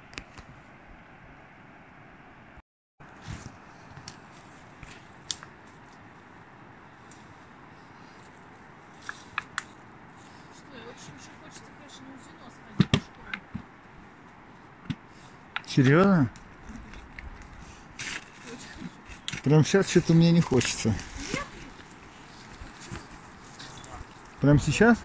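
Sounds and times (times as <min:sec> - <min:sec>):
twigs clicking and snapping: 0:04.8 - 0:06.0, 0:08.9 - 0:09.8, 0:15.5 - 0:24.4.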